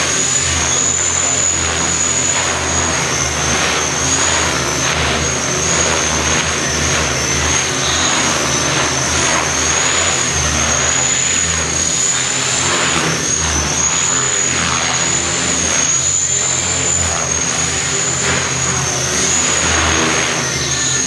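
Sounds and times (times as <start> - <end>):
high motor whine: 0.0 - 21.0
rotor blades humming: 0.0 - 21.0.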